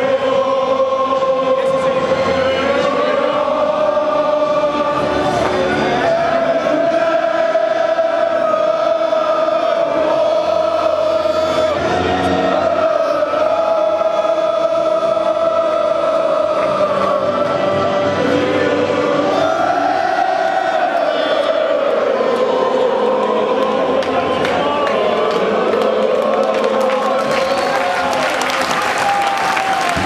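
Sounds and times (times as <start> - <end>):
crowd singing in unison: 0.0 - 30.0.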